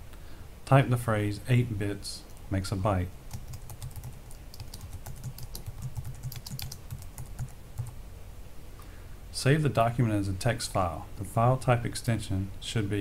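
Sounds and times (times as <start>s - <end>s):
typing on computer keyboard: 3.3s - 8.0s.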